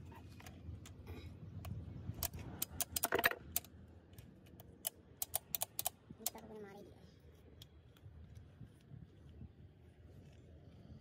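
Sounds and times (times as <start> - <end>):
wrench clicking on bolt: 4.8 - 6.4.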